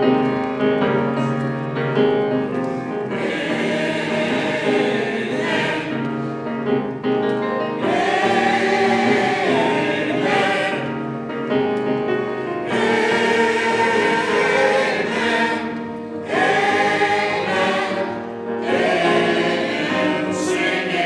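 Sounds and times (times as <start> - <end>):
church choir singing: 0.0 - 21.0.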